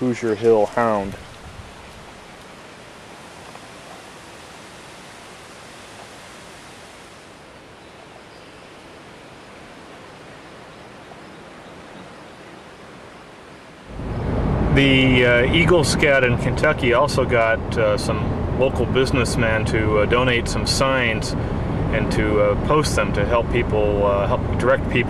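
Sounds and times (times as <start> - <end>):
steady wind hiss: 0.0 - 25.0.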